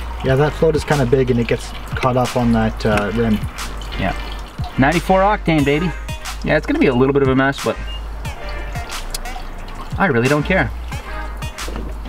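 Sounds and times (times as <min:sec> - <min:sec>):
background music: 0:00.0 - 0:12.0
gasoline dripping into plastic tank: 0:00.0 - 0:12.0.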